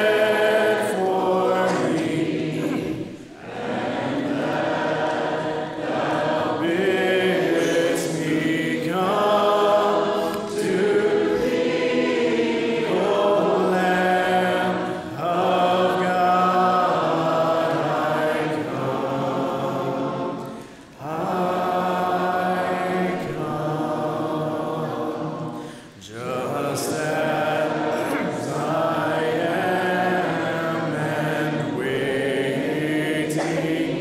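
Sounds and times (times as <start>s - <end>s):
congregation singing a hymn: 0.0s - 34.0s.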